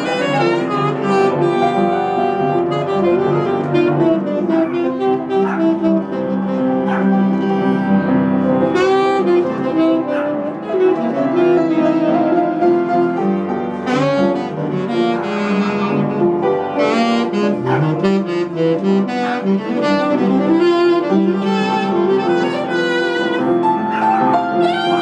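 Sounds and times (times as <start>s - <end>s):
tenor saxophone melody: 0.0s - 25.0s
upright piano accompaniment: 0.0s - 25.0s.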